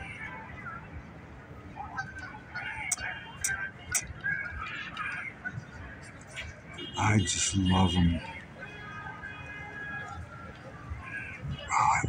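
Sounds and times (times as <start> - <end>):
faint distant voices: 0.0 - 12.0
outdoor background noise: 0.0 - 12.0.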